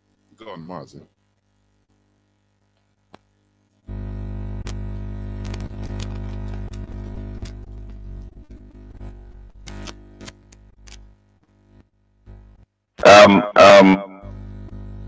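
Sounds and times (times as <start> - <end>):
electrical buzz on phone line: 0.0 - 15.0
clicks and crackles: 4.6 - 8.4, 9.0 - 11.1.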